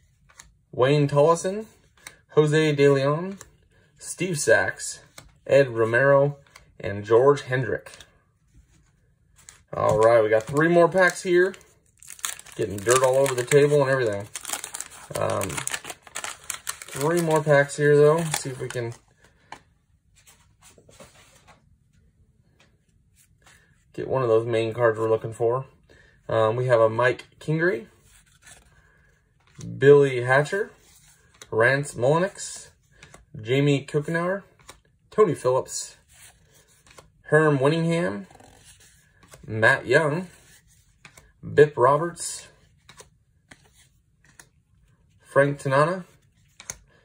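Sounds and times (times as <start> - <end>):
cards and wrapper rustling: 7.7 - 21.4.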